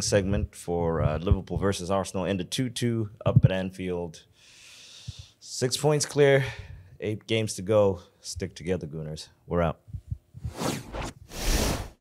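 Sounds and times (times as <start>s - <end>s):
whoosh transition effects: 10.4s - 12.0s.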